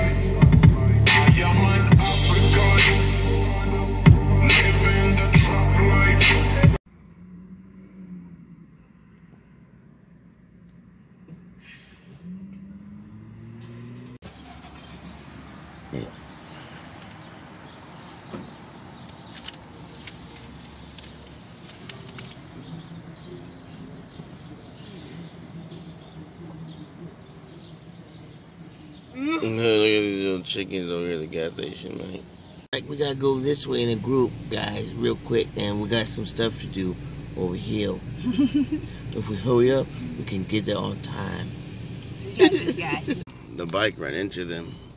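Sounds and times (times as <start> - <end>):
electronic music with heavy beat: 0.0 - 6.8
low hum rising in pitch: 0.0 - 9.8
distant street traffic: 6.8 - 44.9.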